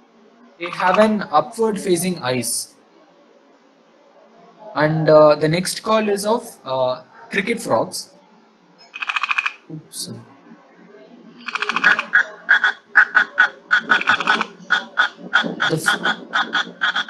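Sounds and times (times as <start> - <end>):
frog clicking call: 8.9 - 9.6, 11.4 - 17.0.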